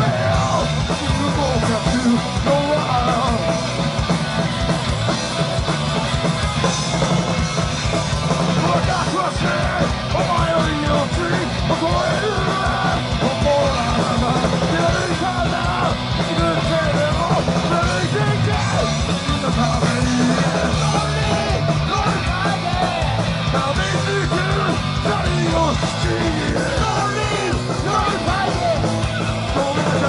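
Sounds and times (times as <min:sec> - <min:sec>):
drums: 0:00.0 - 0:30.0
electric guitars: 0:00.0 - 0:30.0
person singing into microphone: 0:08.6 - 0:28.9.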